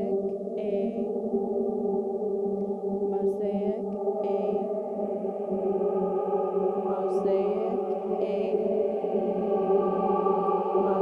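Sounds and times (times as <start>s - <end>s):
looped voice drone: 0.0s - 1.2s, 3.1s - 5.2s, 6.7s - 11.0s.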